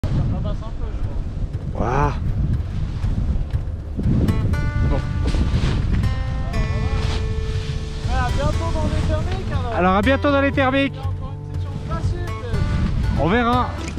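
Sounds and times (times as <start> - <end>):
wind buffeting microphone: 0.0 - 13.9
music with held notes: 1.1 - 13.9.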